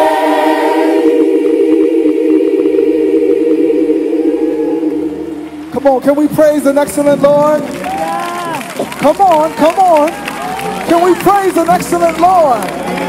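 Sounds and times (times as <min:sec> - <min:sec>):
choir singing held chord: 0:00.0 - 0:05.8
low bass notes: 0:00.0 - 0:13.0.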